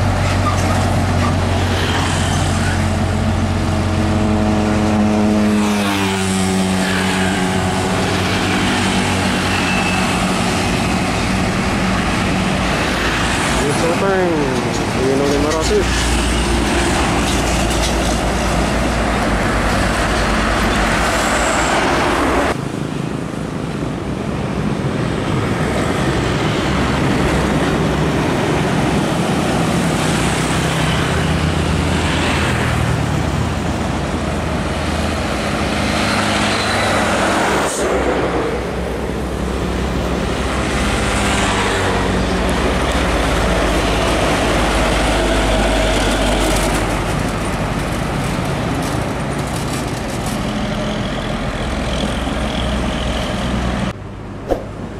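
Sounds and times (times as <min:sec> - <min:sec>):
road traffic: 0:00.0 - 0:54.9.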